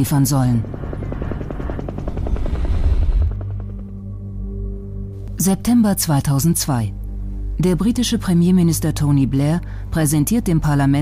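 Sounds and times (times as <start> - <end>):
helicopter rotor blades beating: 0.0 - 4.3.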